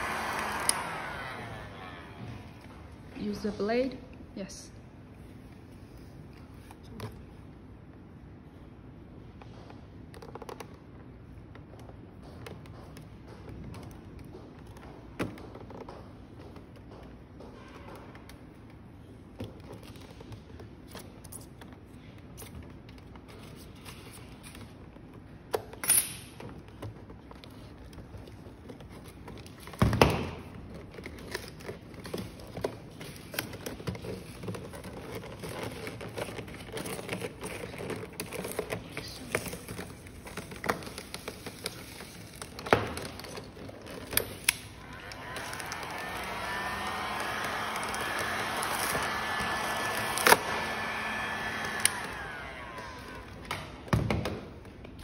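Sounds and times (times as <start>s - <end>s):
steady whirring noise: 44.7s - 53.6s.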